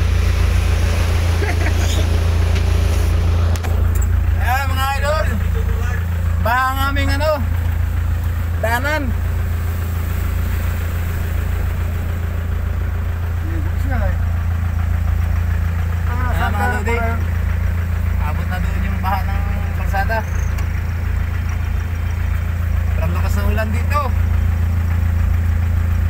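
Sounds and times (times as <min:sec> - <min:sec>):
vehicle engine low rumble: 0:00.0 - 0:26.0.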